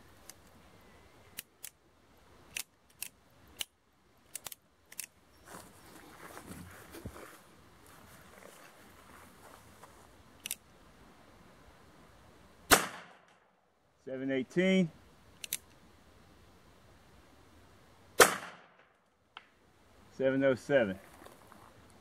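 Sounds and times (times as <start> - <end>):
revolver gunshot: 12.7 - 13.3, 18.2 - 18.9
revolver metallic clicks: 15.4 - 15.8.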